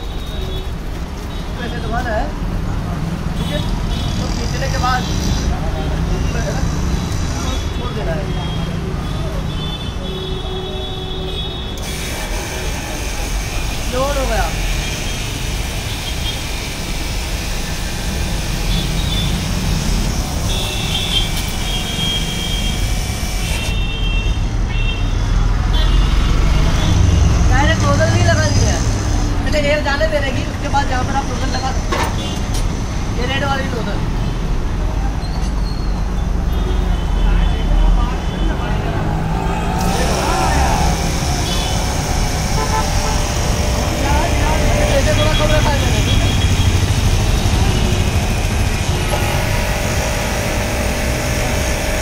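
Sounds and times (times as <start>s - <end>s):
street traffic rumbling: 0.0s - 52.0s
pressure washer hissing: 11.8s - 23.9s, 39.0s - 52.0s
car horn toots: 39.9s - 51.0s.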